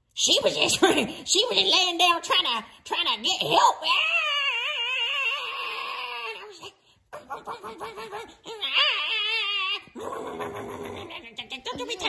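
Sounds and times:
person wailing with warbling pitch: 3.5 - 12.0
person growling cry: 3.8 - 11.4.

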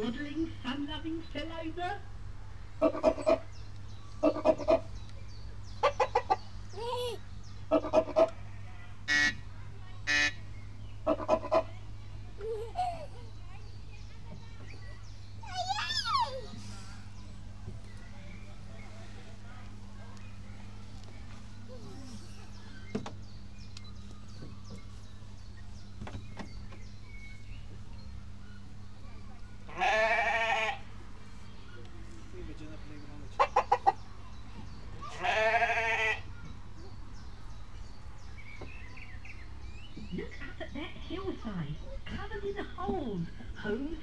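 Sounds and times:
low steady hum: 0.0 - 44.0
hen clucking: 2.8 - 3.5, 4.2 - 5.0, 5.8 - 7.1, 7.7 - 8.4, 11.0 - 11.8, 33.3 - 34.1.

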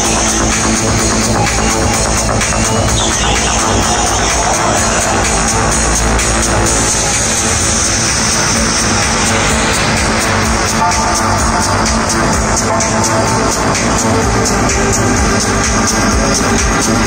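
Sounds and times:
techno dance music: 0.0 - 17.0.

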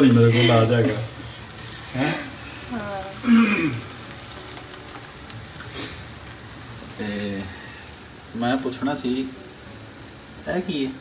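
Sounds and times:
flatbread sizzling on griddle: 0.0 - 11.0.

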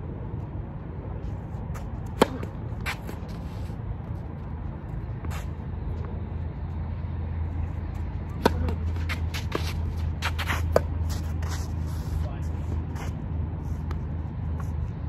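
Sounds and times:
tennis ball struck by rackets: 1.8 - 3.4, 8.3 - 11.2
ball bounces: 8.3 - 9.6.

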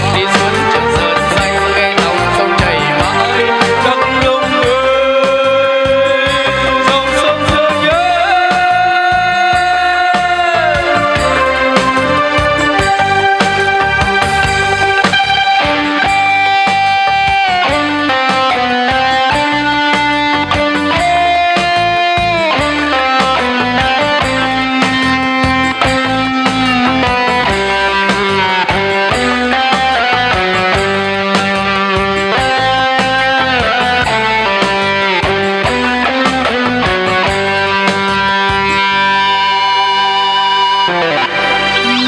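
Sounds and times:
steady drum beat: 0.0 - 38.9
keyboard guitar-like lead melody: 0.0 - 42.0.

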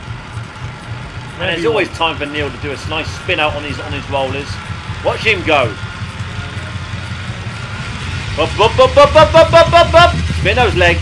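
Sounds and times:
bike whirring on rollers: 0.0 - 11.0.

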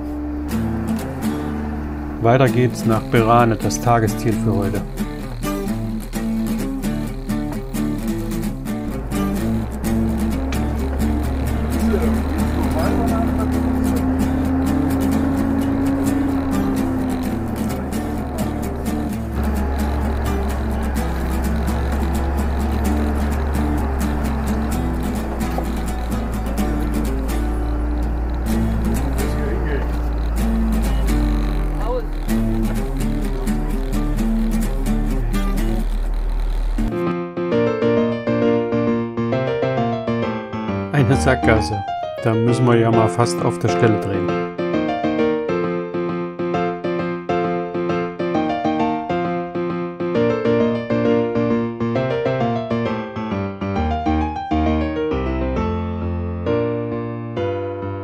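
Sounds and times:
sustained low bass line: 0.0 - 37.0.

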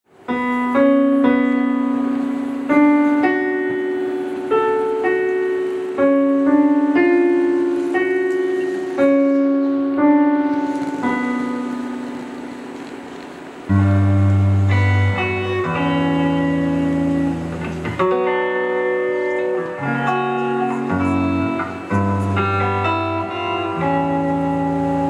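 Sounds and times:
electric piano sustained notes: 0.1 - 25.0.

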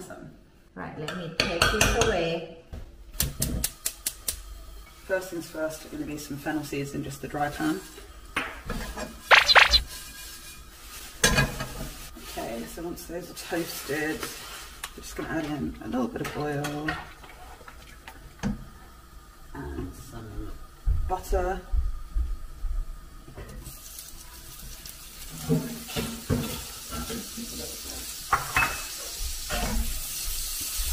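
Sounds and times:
butter sizzling in a frying pan: 10.1 - 15.0, 23.0 - 30.9.

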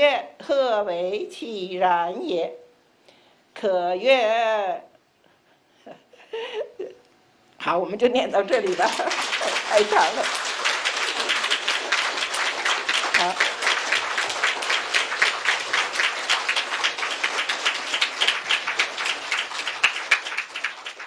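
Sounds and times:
audience applauding: 8.5 - 21.0.

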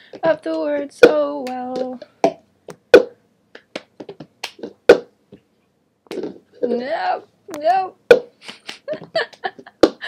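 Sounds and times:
plastic cup tapped on hard floor: 1.8 - 3.2
hand claps: 2.7 - 4.7, 8.4 - 10.0.

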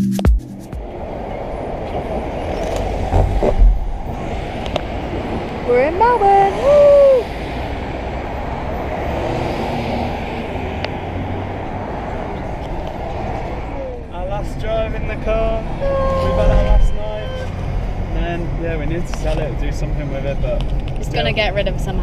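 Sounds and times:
car tyre and wind noise: 0.7 - 22.0.

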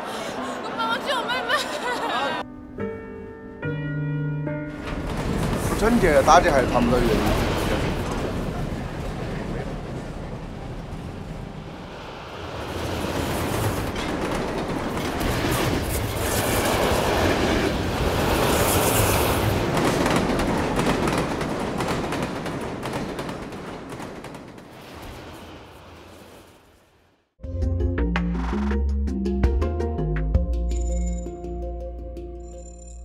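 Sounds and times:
train wheels clattering on rails: 4.7 - 11.6, 12.4 - 26.4
rushing air: 10.6 - 14.3.

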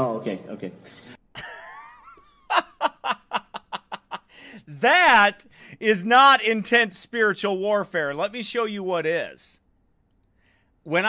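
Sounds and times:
man laughing: 1.4 - 5.2.

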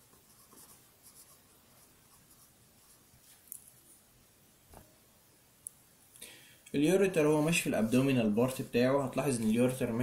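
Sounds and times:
marker pen writing on paper: 0.0 - 3.2.

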